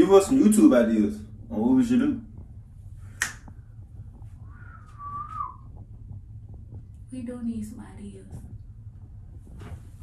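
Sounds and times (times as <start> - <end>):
low steady hum: 0.0 - 10.0
short whistled note: 4.6 - 5.7.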